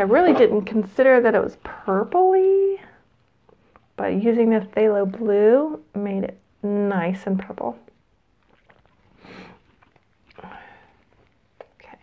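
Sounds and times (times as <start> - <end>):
woman sniffing: 9.2 - 9.6.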